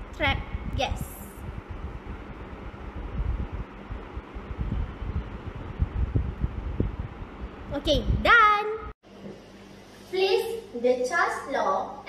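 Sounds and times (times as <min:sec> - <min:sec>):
low rumble: 0:00.0 - 0:08.3.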